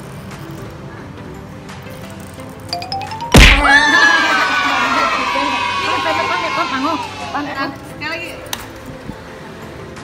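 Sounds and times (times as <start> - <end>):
loud thunk: 3.3 - 3.7.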